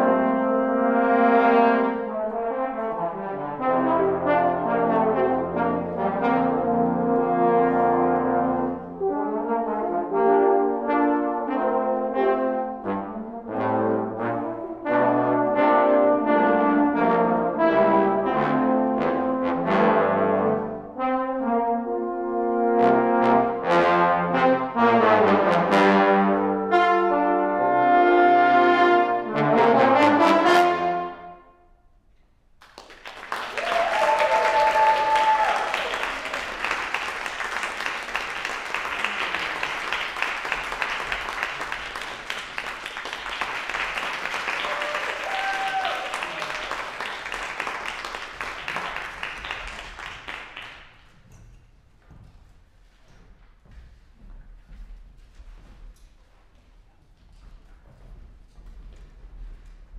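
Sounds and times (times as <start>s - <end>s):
trombone ensemble playing: 0.0s - 31.6s
audience applauding: 32.6s - 51.1s.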